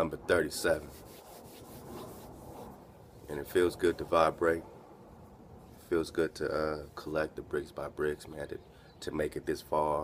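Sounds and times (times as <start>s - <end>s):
low steady background noise: 0.0s - 10.0s
faint rubbing rustle: 0.6s - 4.5s, 5.6s - 7.2s.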